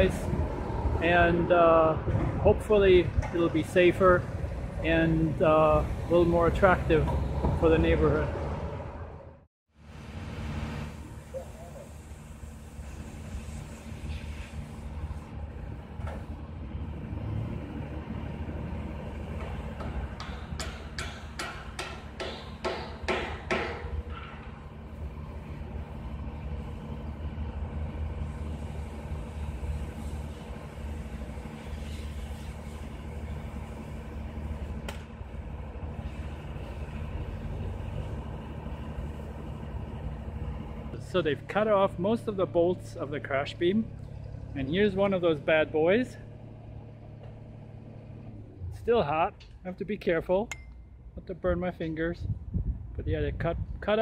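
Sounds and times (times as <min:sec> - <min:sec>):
machine engine droning: 0:00.0 - 0:20.3, 0:23.9 - 0:49.6
sharp knocks on steel: 0:19.4 - 0:24.0.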